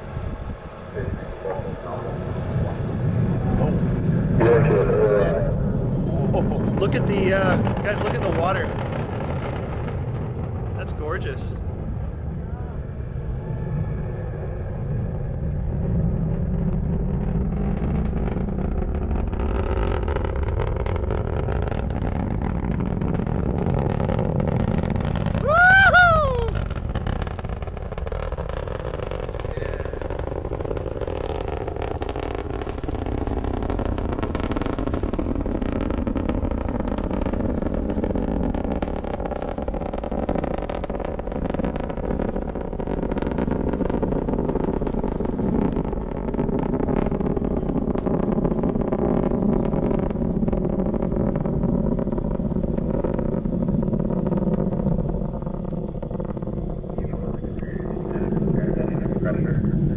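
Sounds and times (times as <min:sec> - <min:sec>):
distant rocket engine rumble: 0:00.0 - 0:59.9
loud whoop: 0:25.3 - 0:26.7.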